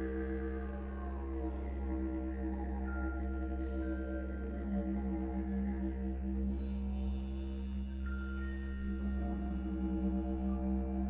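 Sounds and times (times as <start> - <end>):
choral chant-like drone: 0.0 - 11.0.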